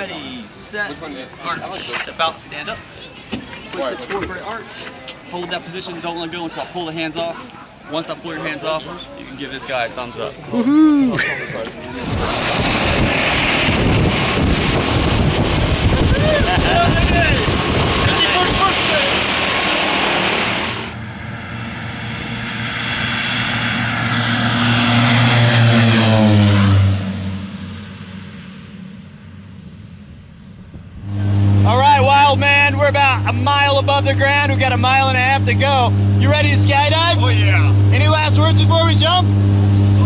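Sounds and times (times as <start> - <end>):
plane engines and propellers rushing: 11.2 - 40.0
plane taking off: 11.9 - 40.0.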